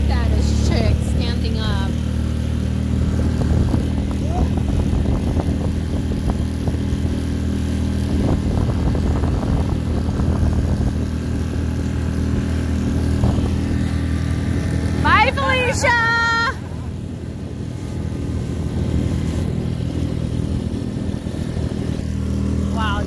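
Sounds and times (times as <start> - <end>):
small outboard motor running: 0.0 - 23.0
water rushing past hull: 0.0 - 23.0.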